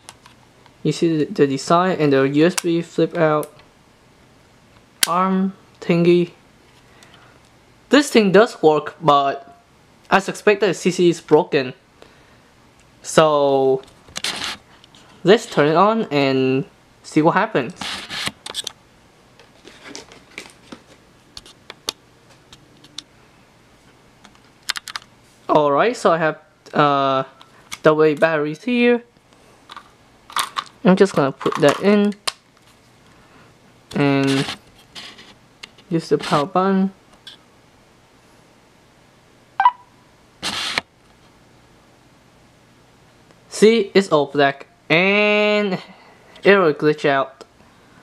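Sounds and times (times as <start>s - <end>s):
camcorder beep: 39.6s - 39.9s.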